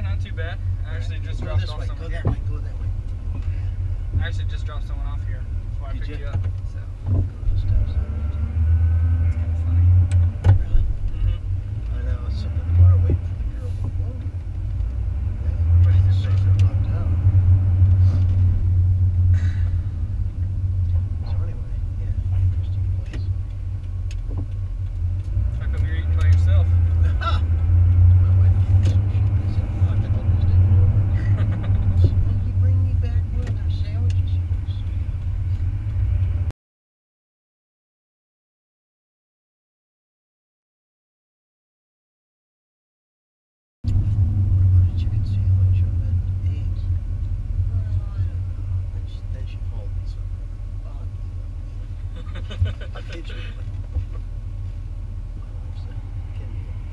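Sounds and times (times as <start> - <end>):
quiet conversation: 0.0 - 35.9, 44.0 - 56.9
road and engine drone in cabin: 0.0 - 36.5, 43.8 - 56.9.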